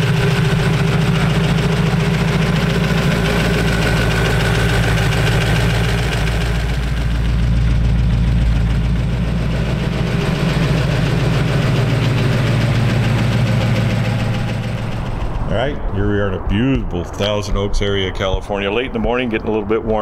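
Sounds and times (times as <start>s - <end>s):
supercharged engine idling: 0.0s - 15.7s.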